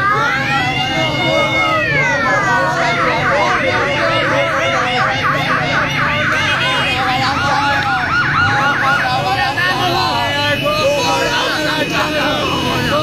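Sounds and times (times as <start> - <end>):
siren yelping: 0.0 - 13.0.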